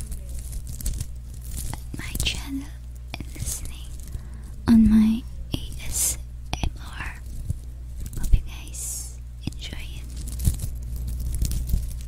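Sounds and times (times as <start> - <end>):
soft whispering: 1.7 - 7.4, 8.0 - 10.2.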